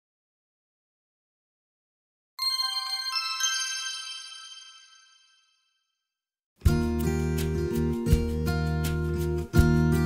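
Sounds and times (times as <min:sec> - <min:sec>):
chime-like bell tones: 0:02.4 - 0:05.9.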